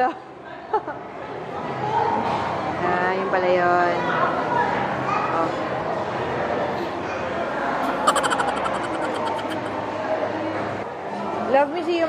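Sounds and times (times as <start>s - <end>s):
indoor background noise: 4.8s - 12.0s.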